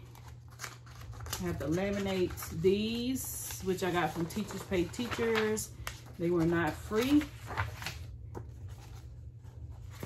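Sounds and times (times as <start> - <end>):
paper sheets flipping: 0.0 - 10.0.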